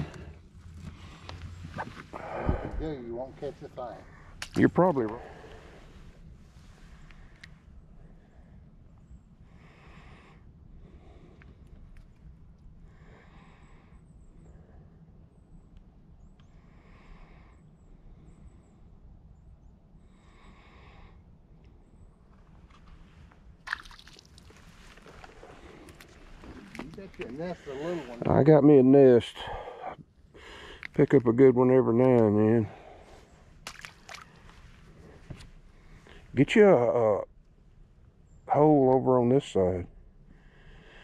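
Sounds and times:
slow breathing close to microphone: 0.0 - 3.0, 5.2 - 8.7, 40.3 - 41.0.

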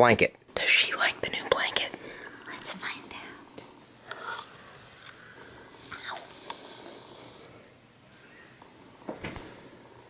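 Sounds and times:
soft whispering: 0.6 - 4.6, 5.2 - 7.5.

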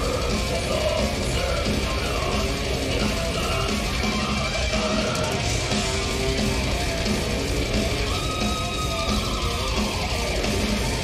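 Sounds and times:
bass guitar: 0.0 - 11.0
distorted electric guitars: 0.0 - 11.0
drums: 0.0 - 11.0.

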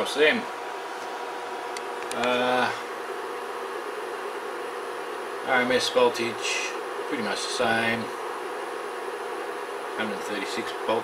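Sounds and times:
electrical buzz with hiss: 0.0 - 11.0.

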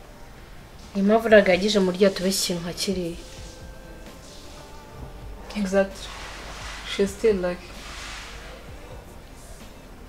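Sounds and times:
soft background music drone: 0.0 - 10.0
woman speaking: 0.9 - 3.6, 5.3 - 6.2, 6.8 - 7.8.

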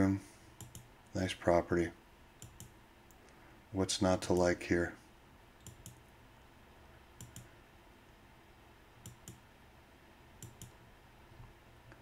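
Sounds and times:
faint room hiss: 0.0 - 12.0
computer mouse clicks: 0.6 - 0.9, 2.4 - 3.4, 5.6 - 6.0, 7.2 - 7.5, 9.0 - 9.4, 10.4 - 10.8.

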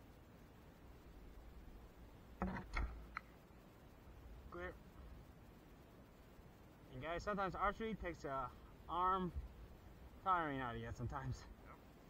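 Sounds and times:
bowstring twang: 2.4 - 3.1.

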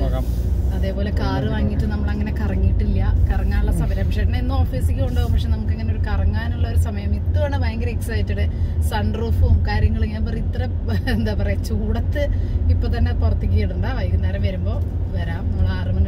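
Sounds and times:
car cabin rumble: 0.0 - 16.0
woman talking: 0.7 - 16.0.

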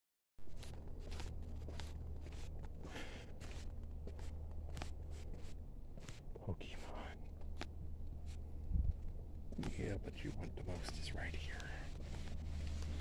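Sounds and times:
steady low hum: 0.4 - 13.0
footsteps on hard floor: 0.5 - 6.2.

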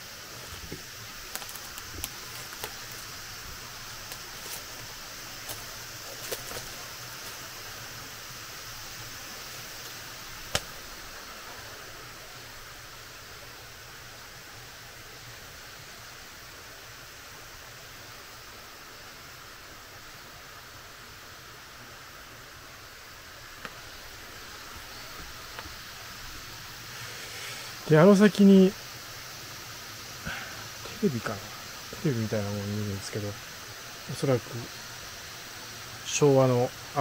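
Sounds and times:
outdoor background hiss: 0.0 - 37.0.

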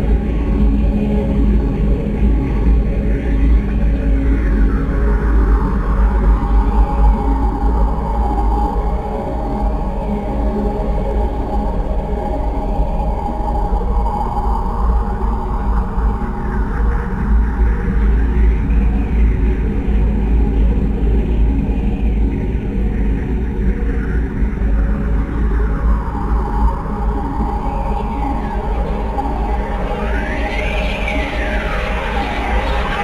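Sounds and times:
low rumbling drone: 17.1 - 33.0.

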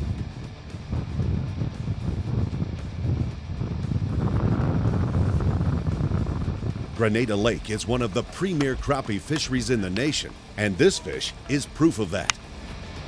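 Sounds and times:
wind buffeting microphone: 0.0 - 10.5
background music: 0.0 - 13.0.

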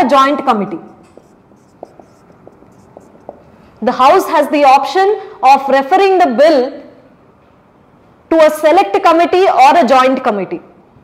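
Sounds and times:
marker pen writing on whiteboard: 0.7 - 4.3
woman speaking: 3.8 - 6.8.

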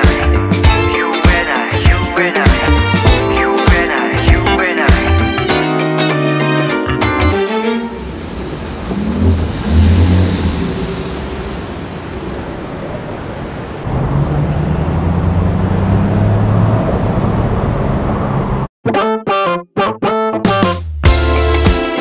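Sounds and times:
road noise hiss: 7.9 - 18.6
car engine running low: 7.9 - 18.7.

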